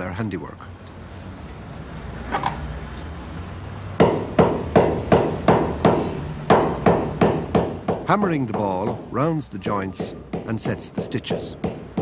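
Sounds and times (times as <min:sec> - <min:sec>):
hammer beating leather ball on wood: 0:04.0 - 0:09.2, 0:10.0 - 0:12.0.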